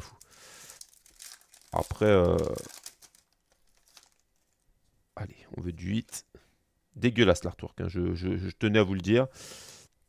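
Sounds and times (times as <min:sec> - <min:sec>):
foil wrapper crinkling: 0:00.0 - 0:04.7.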